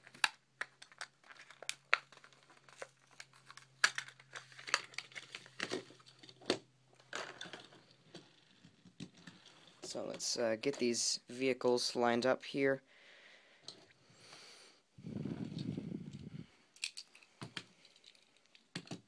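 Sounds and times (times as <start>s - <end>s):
plastic blister crinkling: 0.0s - 10.8s.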